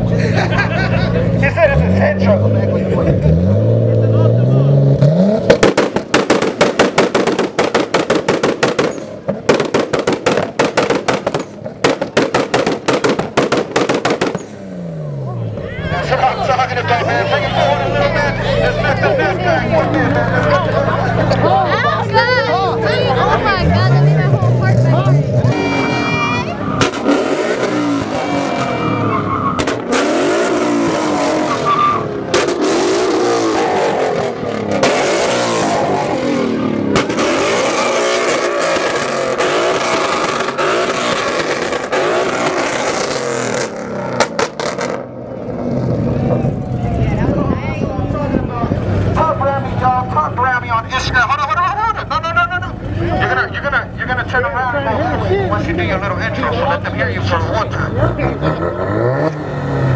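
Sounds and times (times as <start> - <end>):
car engine revving: 0.0 - 59.9
sharp bangs from launch limiter: 5.4 - 14.6.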